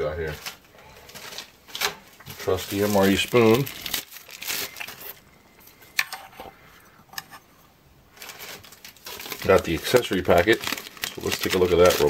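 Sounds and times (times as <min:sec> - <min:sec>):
soft handling rustle: 0:00.0 - 0:12.0.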